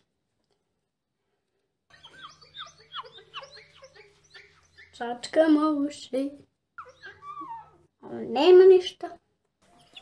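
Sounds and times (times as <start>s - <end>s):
bird chirping: 1.9s - 5.4s, 6.7s - 7.9s, 9.6s - 10.0s.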